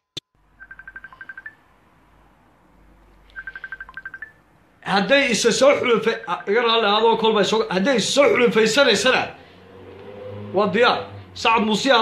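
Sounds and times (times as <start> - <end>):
rapid high-pitched electronic beeps: 0.6 - 1.6, 3.4 - 4.4.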